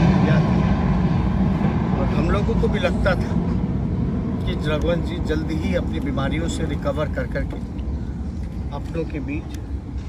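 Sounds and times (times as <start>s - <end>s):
low rumble: 0.0s - 8.7s.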